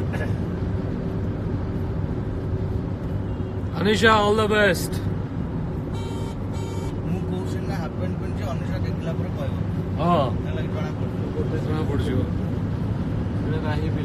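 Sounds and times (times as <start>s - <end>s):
car road and engine drone: 0.0s - 14.0s.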